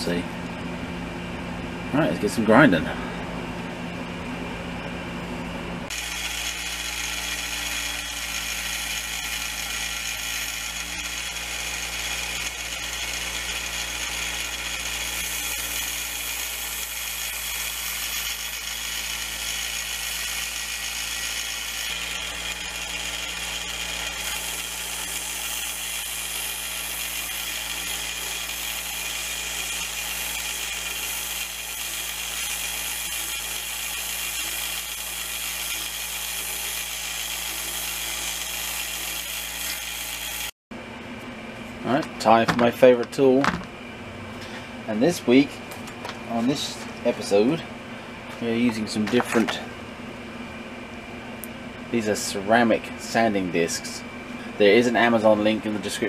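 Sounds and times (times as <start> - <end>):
belt grinder motor hum: 5.8 - 40.6
steel grinding on belt: 5.9 - 40.6.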